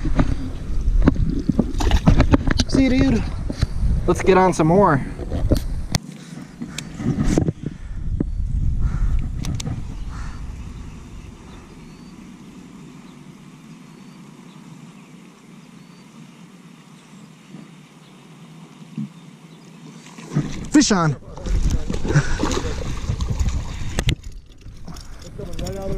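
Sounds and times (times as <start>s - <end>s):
rod handling rumble: 1.0s - 4.2s, 20.2s - 25.9s.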